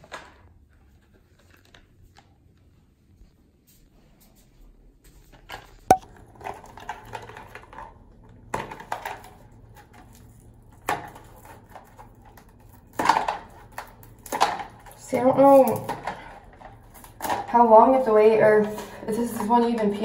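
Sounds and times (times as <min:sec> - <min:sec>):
packaging crinkling and rustling: 0:00.0 - 0:03.2, 0:05.3 - 0:17.5.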